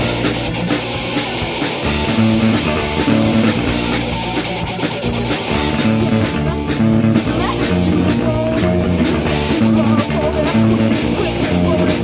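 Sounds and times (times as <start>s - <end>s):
bass guitar: 0.0s - 12.0s
distorted electric guitar: 0.0s - 12.0s
drum kit: 0.0s - 12.0s.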